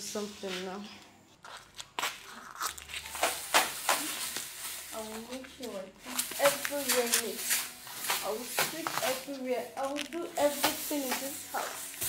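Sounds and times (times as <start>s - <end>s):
broom sweeping hard floor: 0.0s - 0.9s, 3.1s - 12.0s.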